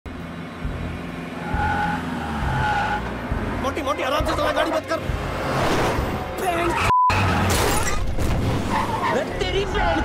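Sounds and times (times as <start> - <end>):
car engines rumbling: 0.1 - 10.0.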